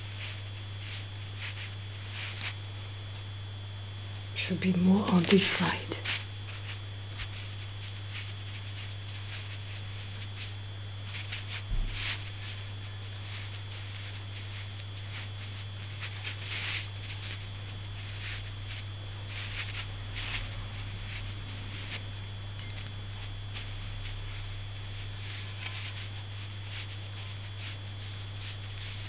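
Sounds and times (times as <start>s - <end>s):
steady electrical hum: 0.0s - 29.0s
brush strokes on paper: 23.5s - 29.0s.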